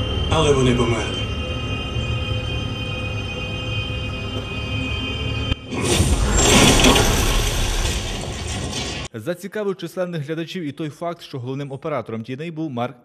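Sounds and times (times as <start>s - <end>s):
tense scary music drone: 0.0s - 9.1s
loud explosion: 5.7s - 9.1s.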